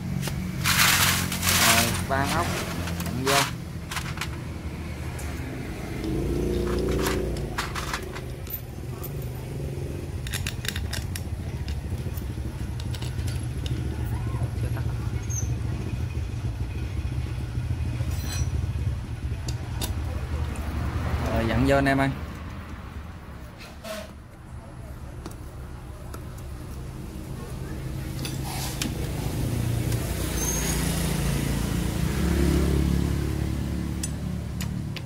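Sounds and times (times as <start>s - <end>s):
motorbikes: 0.0s - 35.0s
road traffic rumble: 0.0s - 35.0s.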